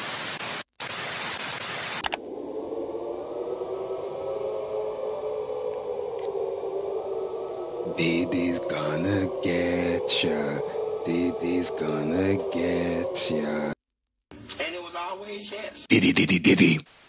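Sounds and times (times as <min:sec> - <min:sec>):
faint steady tones: 0:02.0 - 0:13.8
muffled low hum: 0:02.1 - 0:13.8
television static hiss: 0:15.9 - 0:17.0.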